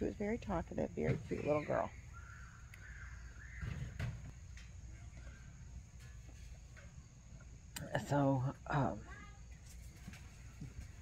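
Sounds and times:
distant bird calling: 0.8s - 5.9s.

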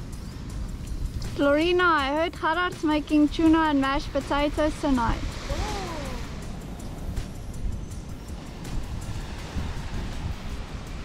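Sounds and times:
wind gusting across microphone: 0.0s - 11.0s
small waves washing on beach: 0.2s - 7.5s, 8.1s - 11.0s.

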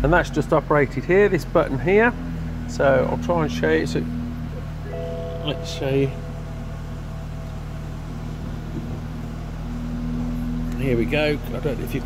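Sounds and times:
car engine idling: 0.0s - 12.0s
faint steady tone: 4.6s - 10.6s.

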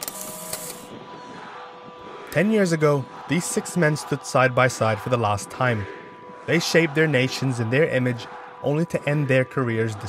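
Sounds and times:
background music drone: 0.0s - 10.0s.

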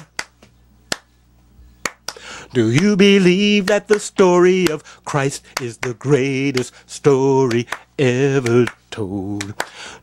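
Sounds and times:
finger snaps: 0.0s - 1.1s, 1.8s - 2.3s.

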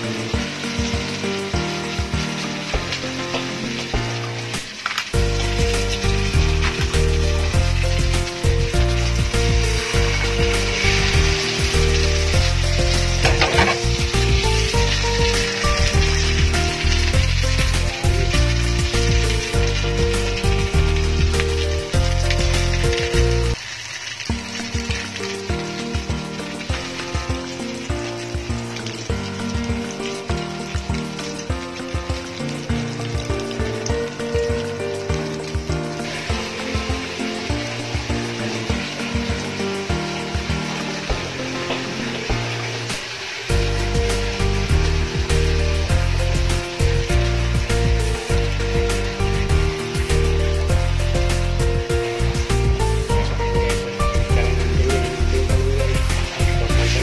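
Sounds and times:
omelette sizzling in oil: 0.0s - 57.0s
background music with heavy bass: 5.2s - 23.6s, 43.5s - 57.0s.

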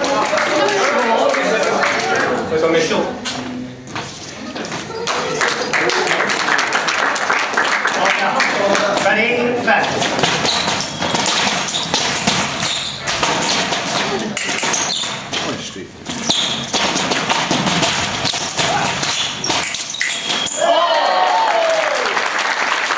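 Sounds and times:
voices in room: 0.0s - 10.7s
footwork taps and thuds: 8.8s - 20.0s
loud yell: 20.6s - 22.2s.

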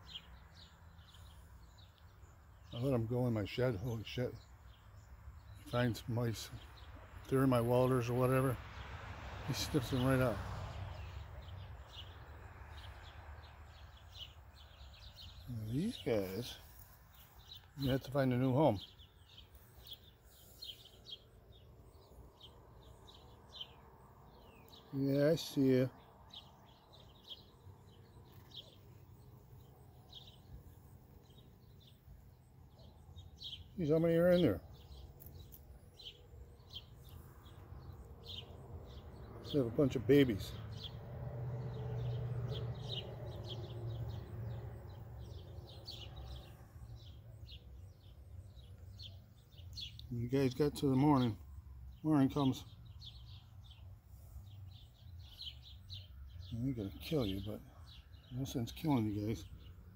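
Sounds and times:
faint bird chirping: 0.0s - 59.9s
outdoor background noise: 0.0s - 59.9s.

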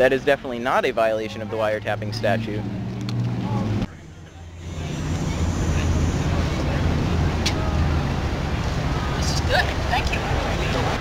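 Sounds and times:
low outdoor rumble: 1.3s - 11.0s.

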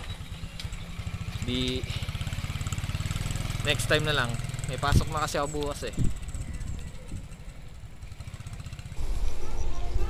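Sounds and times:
wind buffeting microphone: 4.7s - 8.1s.

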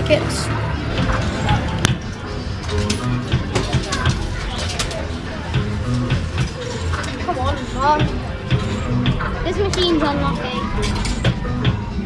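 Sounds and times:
game machine music and jingles: 0.0s - 5.0s, 10.1s - 11.6s
background chatter: 0.0s - 12.0s.

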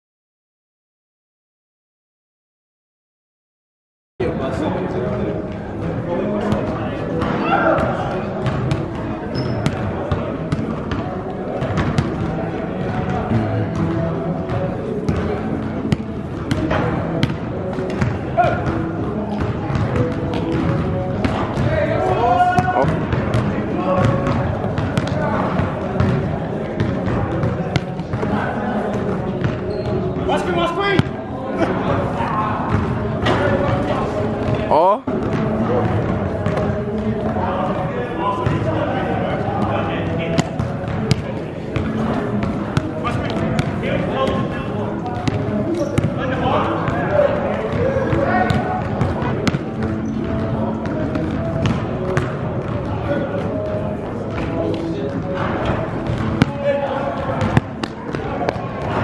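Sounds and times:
basketball bouncing on gym floor: 7.7s - 28.3s, 34.5s - 37.4s, 40.4s - 44.5s, 45.1s - 46.2s, 47.7s - 53.7s, 54.3s - 59.0s
background music with vocals: 12.6s - 59.0s.

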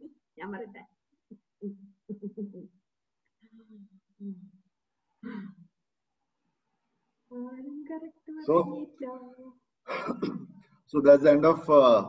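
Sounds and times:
person clearing throat: 5.2s - 5.7s, 9.9s - 10.6s
person speaking: 7.4s - 9.5s.

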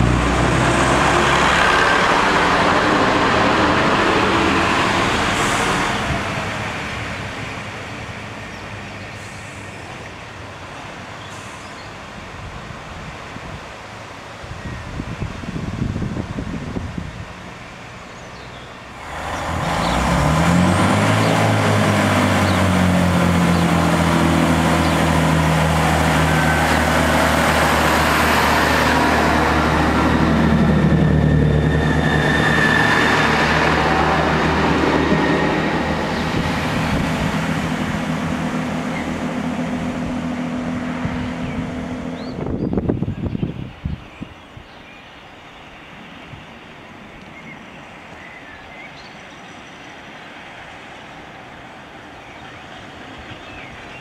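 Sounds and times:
train diesel engines revving: 0.0s - 12.6s, 17.4s - 42.9s
approaching train: 0.0s - 54.0s.

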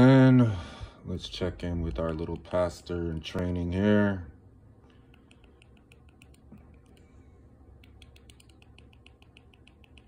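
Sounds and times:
faint rapid remote clicks: 7.8s - 10.0s.

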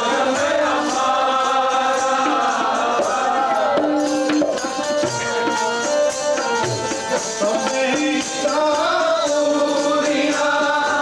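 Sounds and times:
men chanting a hymn: 0.0s - 4.8s, 7.1s - 11.0s
harmoniums: 0.0s - 11.0s.

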